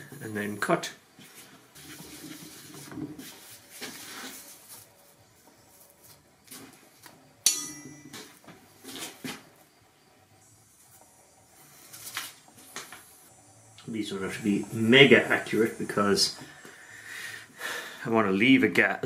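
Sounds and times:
sharp metallic clink: 7.4s - 8.4s.

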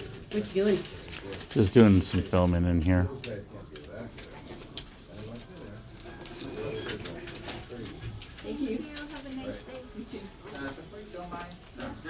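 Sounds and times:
muffled voices talking: 0.4s - 12.0s.

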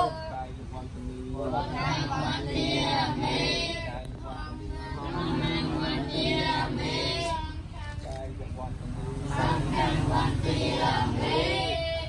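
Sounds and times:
children chanting together: 1.4s - 7.6s, 9.1s - 12.0s.

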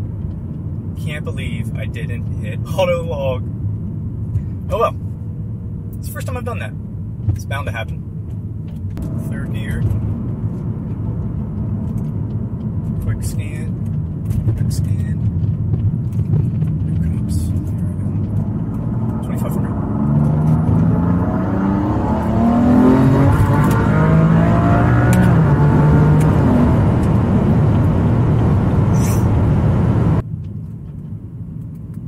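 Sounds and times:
car engine accelerating: 8.3s - 30.2s.

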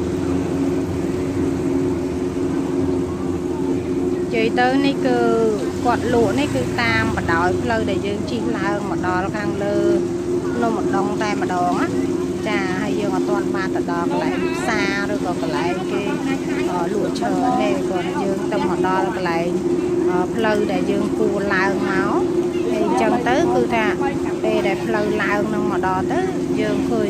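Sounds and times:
steady mechanical hum: 0.0s - 27.0s
people talking: 2.6s - 27.0s.

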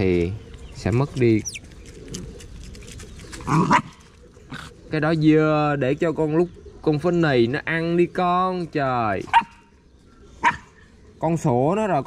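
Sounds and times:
rustling: 0.0s - 4.4s
dog barking: 3.6s - 3.9s, 9.3s - 9.6s, 10.4s - 10.7s.

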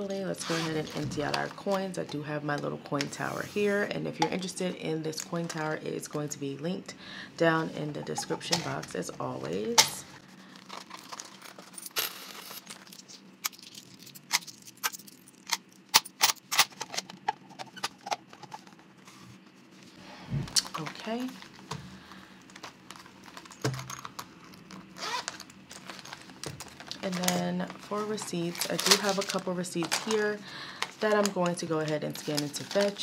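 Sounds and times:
coins clinking in plastic tower: 11.1s - 12.9s.

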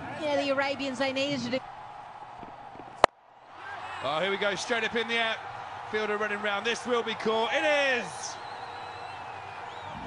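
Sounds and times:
faint stadium background: 0.0s - 10.0s.

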